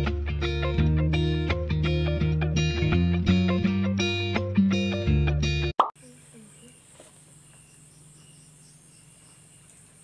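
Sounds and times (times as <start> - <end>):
guitar background music: 0.0 - 5.7
crickets chirping: 6.0 - 10.0.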